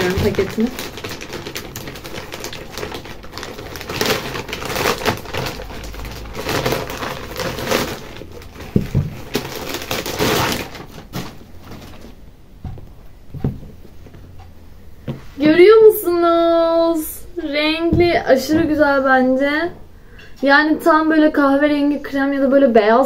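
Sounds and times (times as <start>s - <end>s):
plastic packaging rustling: 0.0s - 14.3s.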